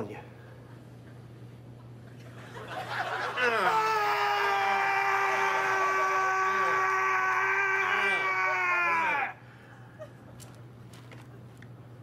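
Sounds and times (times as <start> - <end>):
man screaming: 3.3 - 9.4.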